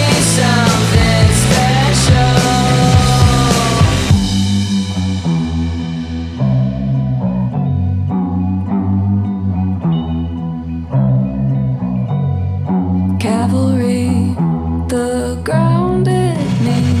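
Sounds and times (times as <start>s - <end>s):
bass guitar: 0.0s - 17.0s
guitar playing plucked figure: 0.0s - 17.0s.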